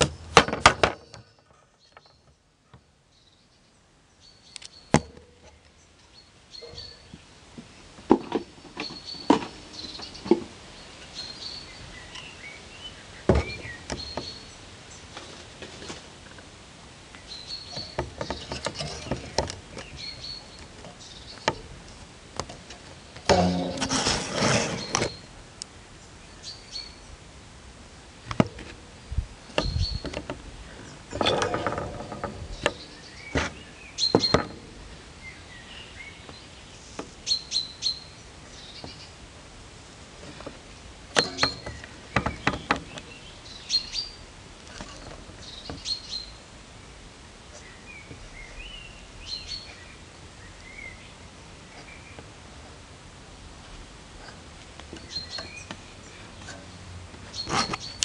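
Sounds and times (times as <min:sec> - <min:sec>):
steady background hiss: 0:00.0 - 0:58.0
faint bird chirps: 0:01.2 - 0:07.2.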